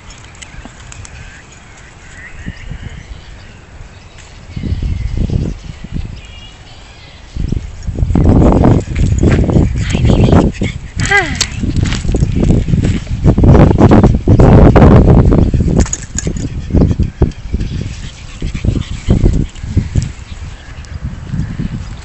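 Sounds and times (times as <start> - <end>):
dog sniffing and snuffling: 8.2 - 13.1, 15.3 - 20.2.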